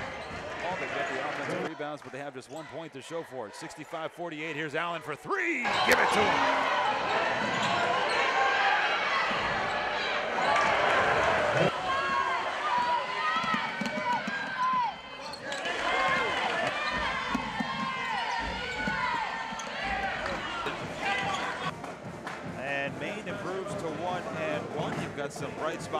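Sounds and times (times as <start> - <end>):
crowd murmur: 5.6 - 22.1
sneakers squeaking: 5.7 - 8.6, 12.7 - 21.7
basketball bouncing on hardwood: 15.9 - 21.4.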